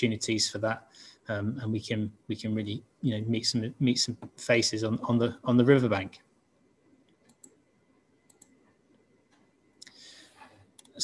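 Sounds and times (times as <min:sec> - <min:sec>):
person speaking: 0:00.0 - 0:06.2
computer mouse clicks: 0:07.1 - 0:07.6, 0:08.2 - 0:08.6.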